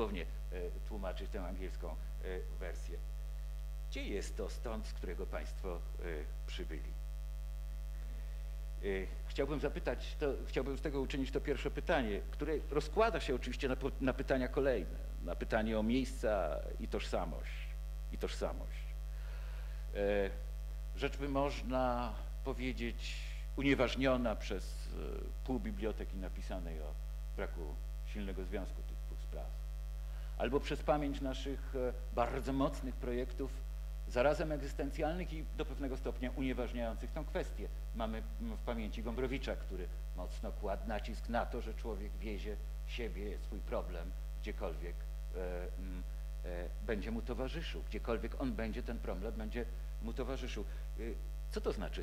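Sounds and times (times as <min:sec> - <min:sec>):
electrical mains hum: 0:00.0 - 0:52.0.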